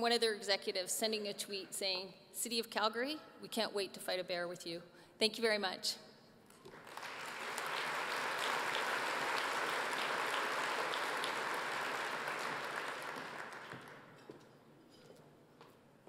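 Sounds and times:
audience applauding: 6.6s - 14.1s.

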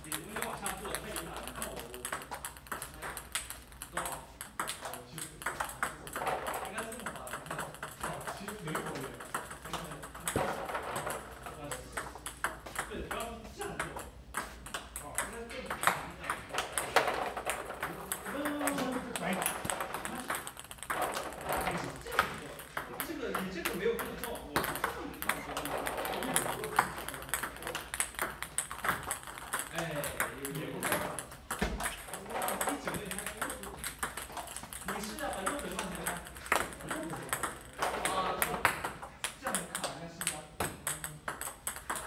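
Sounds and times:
table tennis balls clicking: 0.0s - 42.0s.

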